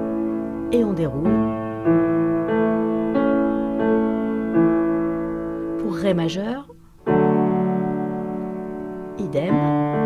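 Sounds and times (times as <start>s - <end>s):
piano chord ringing: 0.0s - 10.0s.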